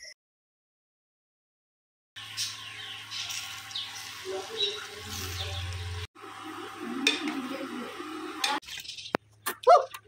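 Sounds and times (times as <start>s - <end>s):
small birds chirping: 2.2s - 6.1s, 8.6s - 9.9s.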